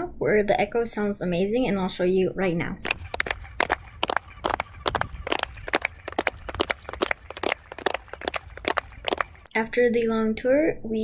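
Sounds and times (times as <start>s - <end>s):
sharp hand claps echoing: 2.8s - 9.5s
steady low rumble: 2.8s - 9.5s.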